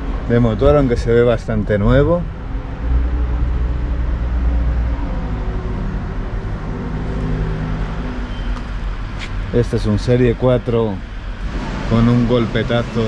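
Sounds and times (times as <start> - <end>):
engine humming: 0.0 - 13.0.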